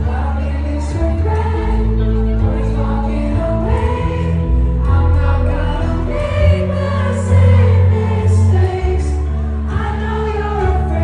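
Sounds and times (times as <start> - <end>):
live band with heavy bass: 0.0 - 11.0
person singing: 0.0 - 11.0.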